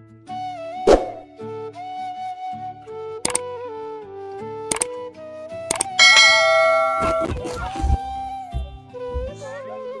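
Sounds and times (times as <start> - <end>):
flute music: 0.3 - 10.0
mouse clicks: 3.2 - 3.4, 4.7 - 4.9, 5.7 - 6.0
bell ding: 6.0 - 7.6.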